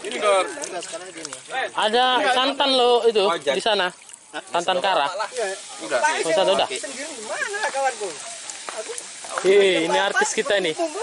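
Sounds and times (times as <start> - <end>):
people talking: 0.0 - 11.0
steady hiss: 2.4 - 11.0.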